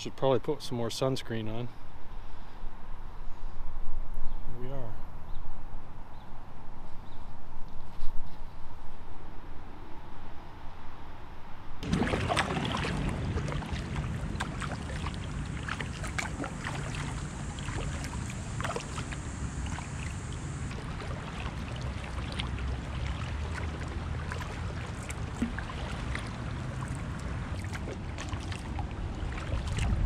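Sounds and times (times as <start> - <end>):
low rumble: 11.8 - 30.0
paddle strokes dipping water: 11.8 - 30.0
small splashes: 11.8 - 30.0.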